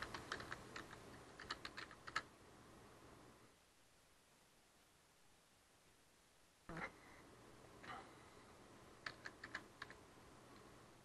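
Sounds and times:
typing on computer keyboard: 0:00.0 - 0:02.3, 0:09.0 - 0:10.0.

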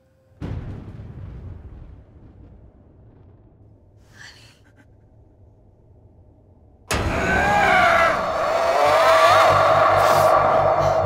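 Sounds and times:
faint low drone: 0:04.6 - 0:11.0
shrieking wavering tones: 0:06.9 - 0:11.0
throbbing low pulse: 0:06.9 - 0:11.0.

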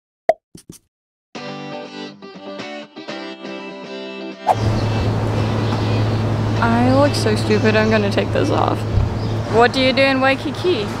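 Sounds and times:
cartoon pop sound effect: 0:00.3 - 0:00.8
street noise: 0:04.5 - 0:11.0.

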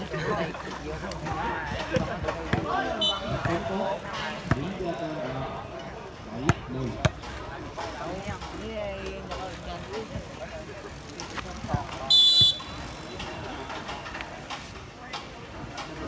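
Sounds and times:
voices of players and onlookers: 0:00.0 - 0:16.0
volleyball bouncing on concrete: 0:01.2 - 0:04.8, 0:06.4 - 0:10.4
referee's whistle blast: 0:12.1 - 0:12.7.

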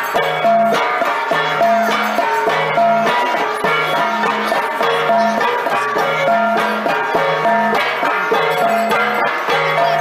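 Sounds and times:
drum beaten with stick: 0:00.0 - 0:10.0
pitched metal gongs ringing: 0:00.0 - 0:10.0.

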